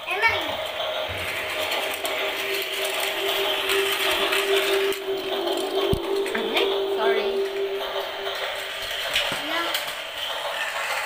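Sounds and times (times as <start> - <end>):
steady hum: 0.3 - 10.6.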